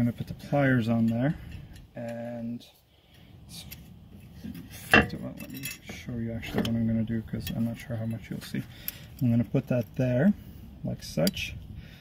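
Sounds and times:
metal tools rubbing and clinking: 4.8s - 7.9s.

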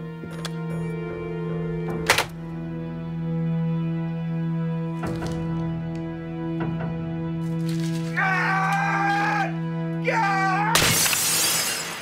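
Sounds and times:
dramatic orchestral score: 0.0s - 12.0s
glass shattering: 10.8s - 12.0s.

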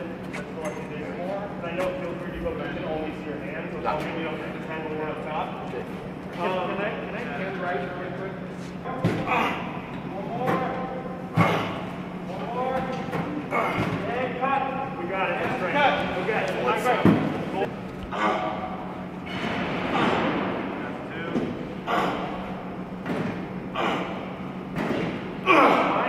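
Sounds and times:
people talking in echoing hall: 0.0s - 22.9s
steady low hum: 0.0s - 26.0s.

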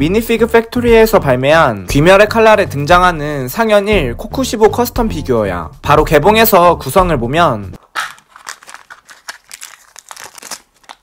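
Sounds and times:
plastic bags crinkling: 7.8s - 11.0s.

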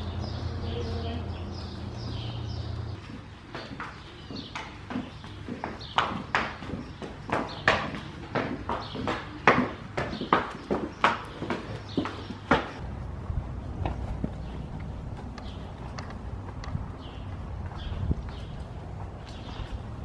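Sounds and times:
horse hooves on concrete: 0.0s - 20.0s.

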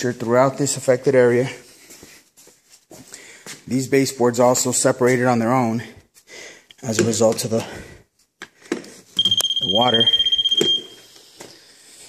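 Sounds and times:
moisture meter high-pitched beep: 9.2s - 11.1s.

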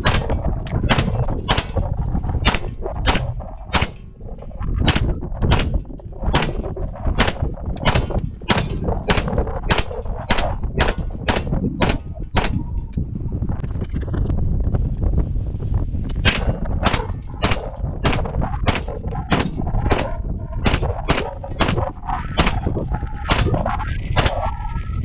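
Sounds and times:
gunshots: 0.0s - 4.1s, 4.8s - 12.8s, 16.2s - 24.6s.

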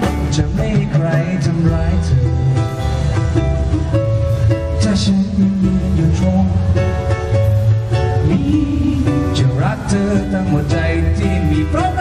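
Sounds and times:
drums: 0.0s - 12.0s
electric bass: 0.0s - 12.0s
ukulele: 0.0s - 12.0s.

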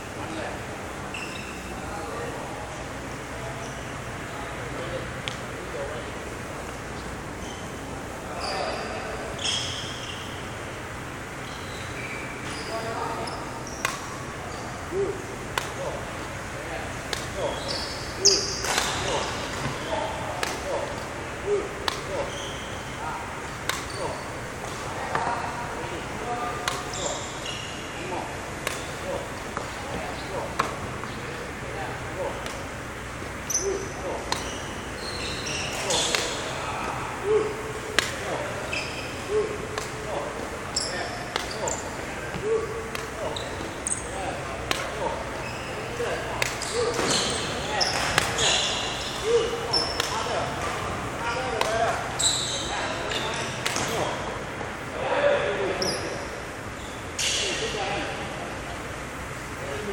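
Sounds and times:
shoes squeaking on wooden court: 1.1s - 2.3s, 3.5s - 4.6s, 6.6s - 10.5s, 11.4s - 15.0s, 15.6s - 54.2s, 55.8s - 57.7s
racket striking shuttlecock: 13.8s - 14.2s, 15.5s - 16.0s, 17.0s - 17.5s, 18.6s - 21.1s, 21.8s - 22.3s, 23.4s - 25.3s, 26.5s - 27.2s, 28.6s - 31.4s, 32.3s - 32.7s, 34.2s - 36.6s, 37.9s - 40.5s, 41.2s - 44.0s, 44.6s - 45.1s, 46.4s - 47.2s, 47.9s - 50.8s.

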